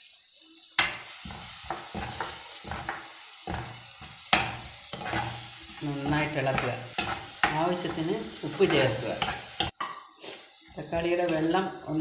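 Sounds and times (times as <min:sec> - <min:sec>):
vegetables sizzling in hot oil: 0:00.0 - 0:12.0
metal spoon scraping pan: 0:00.8 - 0:11.6.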